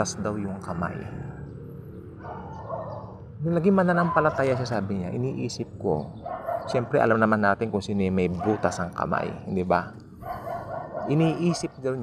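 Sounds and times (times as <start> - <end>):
muffled dog sound: 10.2 - 11.8.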